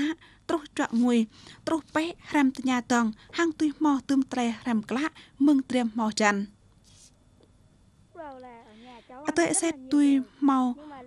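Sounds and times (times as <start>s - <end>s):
boy speaking: 8.2s - 11.0s.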